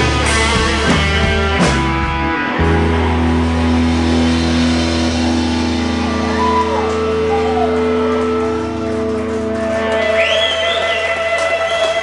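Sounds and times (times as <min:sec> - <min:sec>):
distorted electric guitars and bass: 0:00.0 - 0:12.0.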